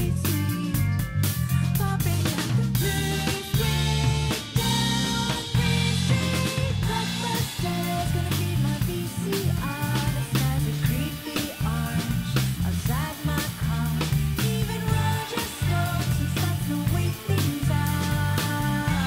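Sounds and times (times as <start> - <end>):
bass line: 0.0 - 19.0
drum kit beat: 0.0 - 19.0
live rock band playing: 0.0 - 19.0.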